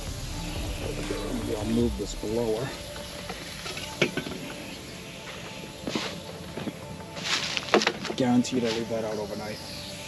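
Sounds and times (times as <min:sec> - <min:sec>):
sprinklers spraying: 0:00.0 - 0:10.0.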